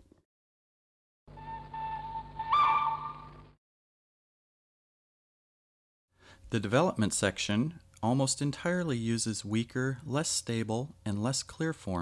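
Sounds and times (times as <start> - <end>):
low hum: 1.3 - 3.6
train whistle two-note chord: 1.3 - 3.6.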